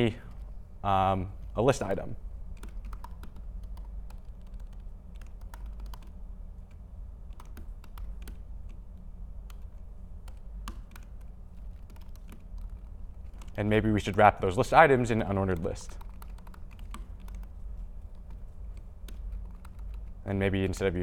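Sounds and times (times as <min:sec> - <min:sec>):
low steady hum: 0:00.0 - 0:21.0
laptop keyboard clicks: 0:02.6 - 0:08.8, 0:09.4 - 0:14.2, 0:15.5 - 0:20.2.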